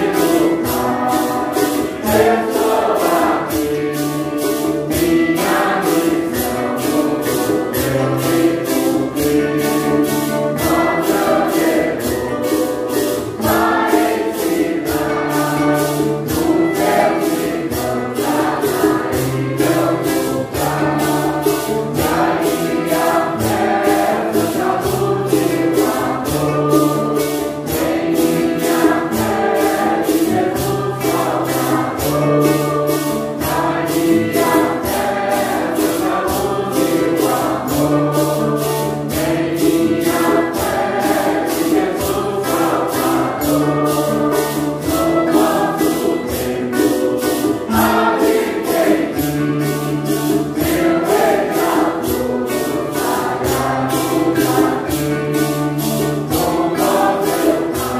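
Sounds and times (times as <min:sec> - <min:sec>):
congregation singing a hymn: 0:00.0 - 0:57.9
low accompaniment: 0:00.0 - 0:57.9
shaken percussion beat: 0:00.0 - 0:57.9.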